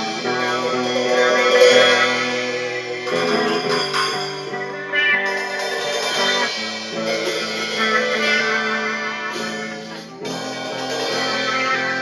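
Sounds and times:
electric guitar ringing chords: 0.0s - 12.0s.

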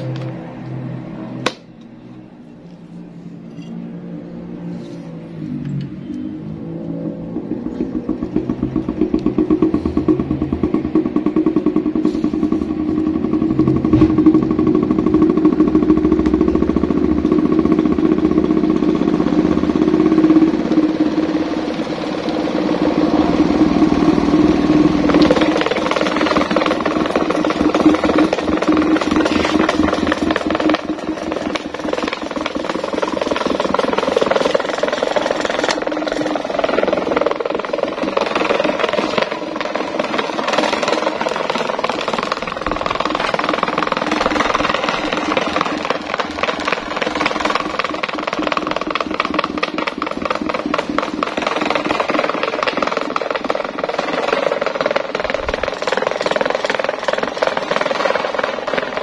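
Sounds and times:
electric fan humming: 6.6s - 52.6s.

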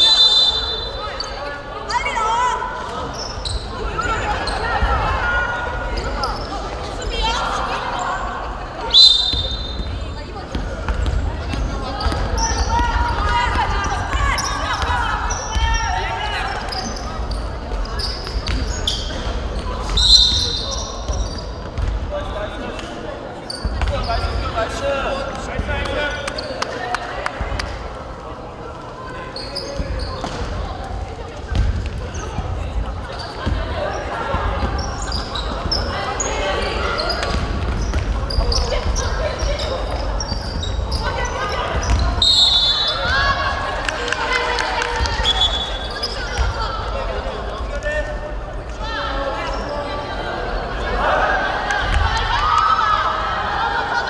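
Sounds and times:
referee whistle blasts: 0.0s - 1.3s, 8.9s - 9.8s, 19.9s - 20.9s, 42.2s - 43.1s.

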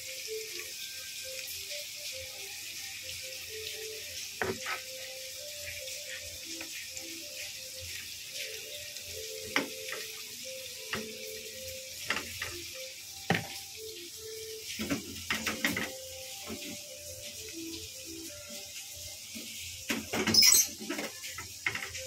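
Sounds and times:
food sizzling in oil: 0.0s - 22.0s.

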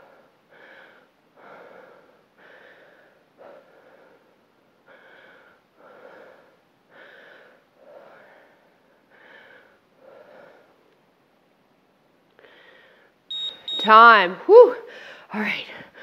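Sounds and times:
woman breathing hard: 0.0s - 10.8s, 12.4s - 13.2s, 14.8s - 16.0s.

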